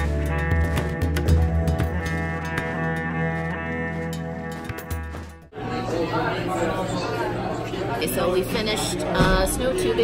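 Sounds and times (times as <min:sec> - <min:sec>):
background music with bass and beat: 0:00.0 - 0:05.5
chatter of a busy room: 0:05.5 - 0:10.0.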